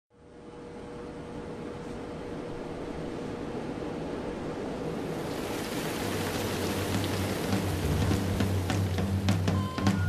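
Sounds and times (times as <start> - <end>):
rain hissing: 4.6 - 10.0
low musical notes: 6.6 - 10.0.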